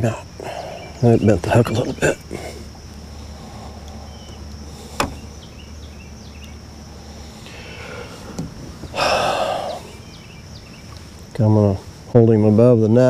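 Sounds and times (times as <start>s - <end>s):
low hum: 0.0s - 12.2s
high insect drone: 0.0s - 13.0s.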